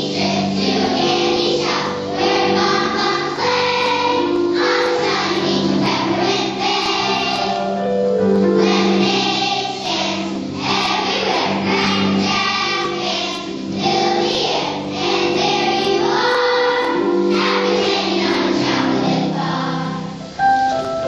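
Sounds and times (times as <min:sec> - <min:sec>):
children's choir singing: 0:00.0 - 0:20.4.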